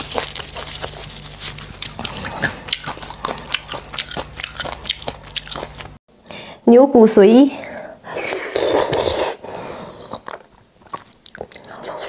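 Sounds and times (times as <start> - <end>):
person chewing food: 0.0 - 6.0, 8.1 - 12.0.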